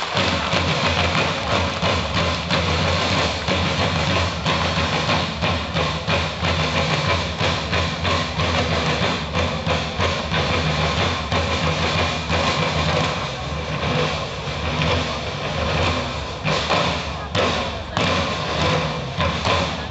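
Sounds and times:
drums beating march rhythm: 0:00.0 - 0:19.9.

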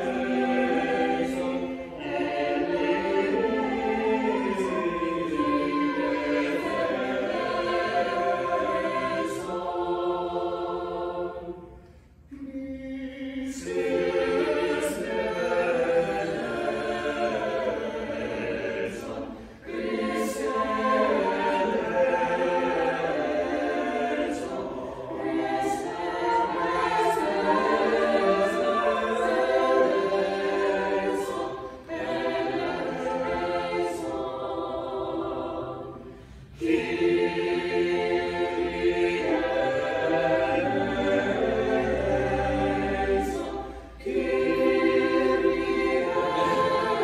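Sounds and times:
mixed choir singing: 0:00.0 - 0:47.0.

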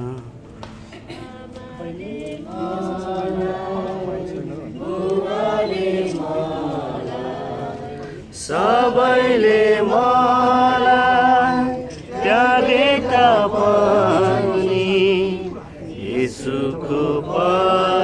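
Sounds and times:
group singing a hymn: 0:00.8 - 0:18.0.

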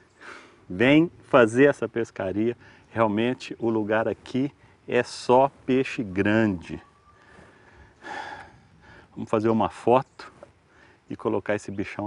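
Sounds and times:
faint low background noise: 0:00.0 - 0:12.0
man exhaling: 0:07.4 - 0:09.1.

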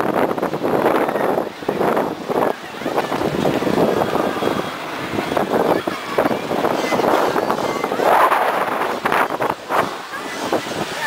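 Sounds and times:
wind buffeting microphone: 0:00.0 - 0:11.0
riders' voices: 0:00.7 - 0:11.0.

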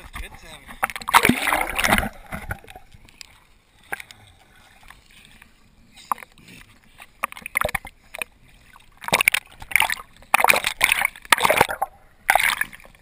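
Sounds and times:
muffled underwater sloshing: 0:00.0 - 0:13.0
small splashes: 0:00.8 - 0:04.1, 0:06.9 - 0:13.0.

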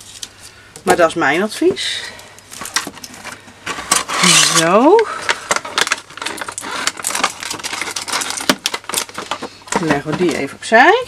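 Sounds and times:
foil sheets rustling and clicking: 0:02.5 - 0:10.6.

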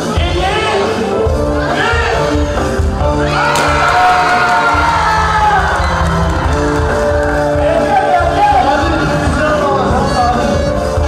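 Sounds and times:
live band music: 0:00.0 - 0:11.0
crowd cheering and whooping: 0:03.2 - 0:09.2.

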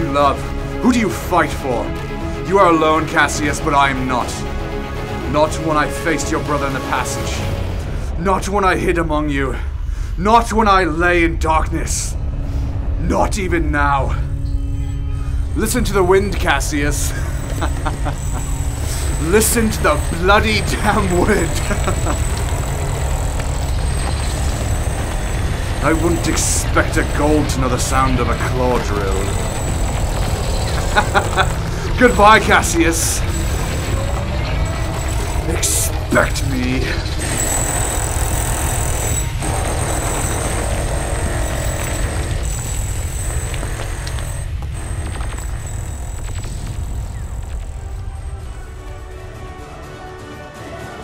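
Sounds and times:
dramatic background music: 0:00.0 - 0:51.0
mining drill boring through rock: 0:16.4 - 0:48.9.

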